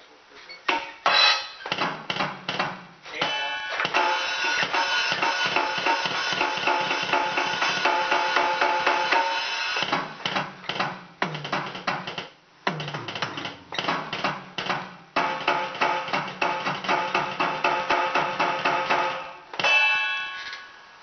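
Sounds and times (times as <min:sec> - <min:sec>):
cymbals: 0:03.2 - 0:09.9
electronic drum kit groove: 0:03.8 - 0:19.4.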